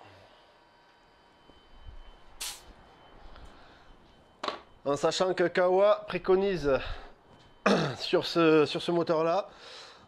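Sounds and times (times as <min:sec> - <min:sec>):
sharp hiss of air: 0:02.4 - 0:02.7.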